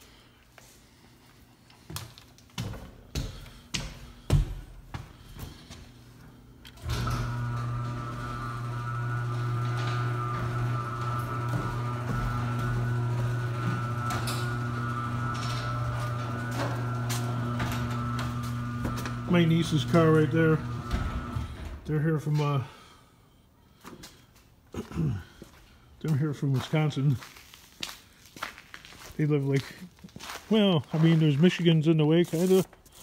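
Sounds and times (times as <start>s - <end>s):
garage door opener motor: 6.5s - 22.2s.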